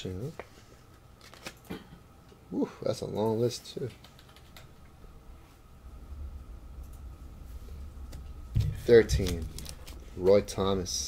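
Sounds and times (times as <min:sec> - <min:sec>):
low steady hum: 0:00.0 - 0:11.0
card handling clicks and rustles: 0:01.2 - 0:01.8, 0:08.6 - 0:10.1.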